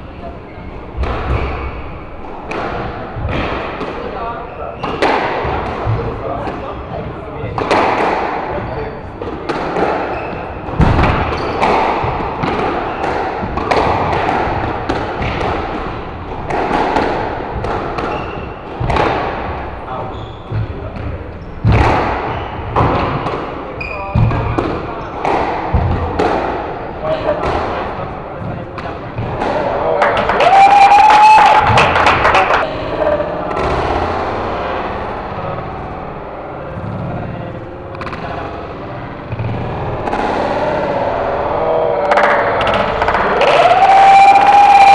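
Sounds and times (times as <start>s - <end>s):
squash ball thuds: 0.9s - 6.8s, 7.5s - 23.6s, 24.2s - 26.7s.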